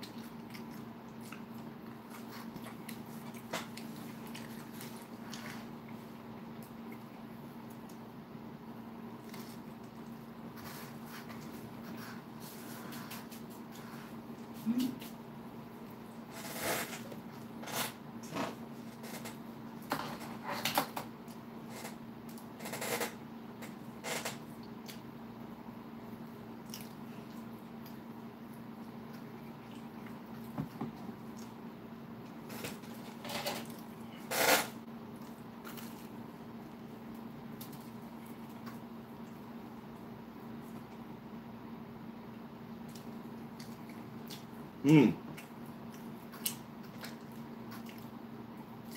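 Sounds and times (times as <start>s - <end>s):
man chewing and smacking lips: 0.0s - 8.2s, 9.0s - 34.2s, 34.9s - 41.3s, 42.2s - 48.9s
steady low hum: 0.0s - 48.9s.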